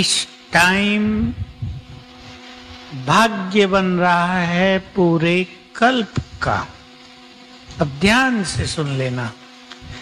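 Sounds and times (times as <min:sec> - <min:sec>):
man speaking into microphone: 0:00.0 - 0:01.5, 0:02.9 - 0:06.8, 0:07.7 - 0:09.4
steady electric hum: 0:00.0 - 0:10.0.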